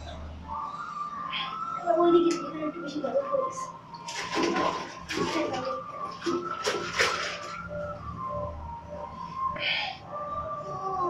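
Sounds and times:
bathwater splashing: 3.9 - 7.9.

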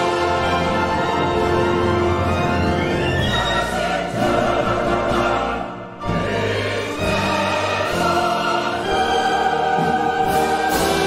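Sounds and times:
choir and orchestra sacred piece: 0.0 - 11.0.

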